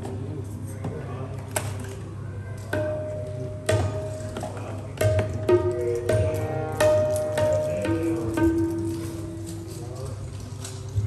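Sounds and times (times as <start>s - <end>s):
tabla strokes: 2.7s - 11.0s.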